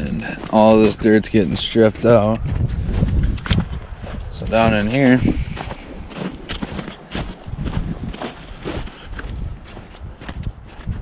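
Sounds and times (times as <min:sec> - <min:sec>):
footsteps on snowy dirt: 0:00.0 - 0:11.0
wind on microphone: 0:00.0 - 0:11.0.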